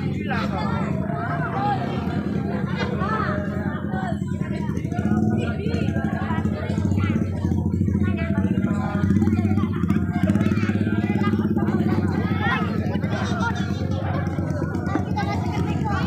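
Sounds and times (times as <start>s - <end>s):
people's voices: 0.0s - 16.0s
small engine running: 0.0s - 16.0s.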